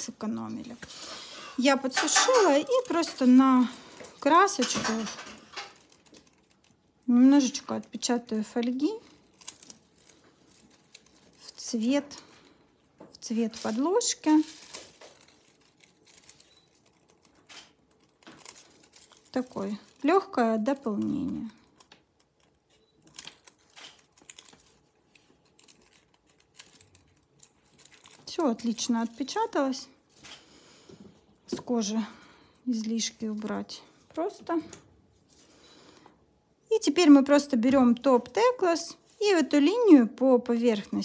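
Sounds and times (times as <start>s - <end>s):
foil rustling: 2.1s - 12.6s, 13.2s - 30.4s.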